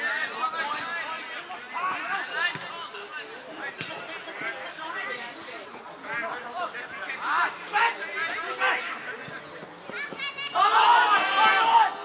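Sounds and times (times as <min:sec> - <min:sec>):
people shouting and talking: 0:00.0 - 0:12.0.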